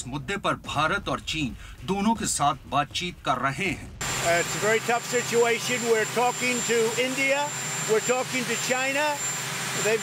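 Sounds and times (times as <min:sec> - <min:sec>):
man speaking: 0:00.0 - 0:09.2, 0:09.8 - 0:10.0
steady mechanical hum: 0:03.3 - 0:10.0
thin high whine: 0:04.0 - 0:10.0.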